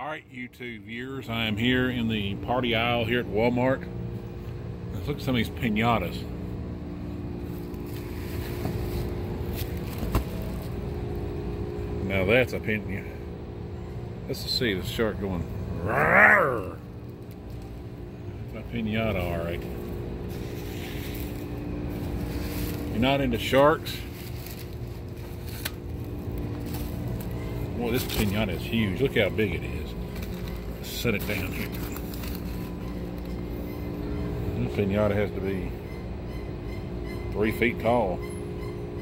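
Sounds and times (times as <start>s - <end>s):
low store room hum: 0.0s - 39.0s
crepe paper handling: 7.4s - 11.2s, 19.6s - 28.5s, 29.9s - 33.5s.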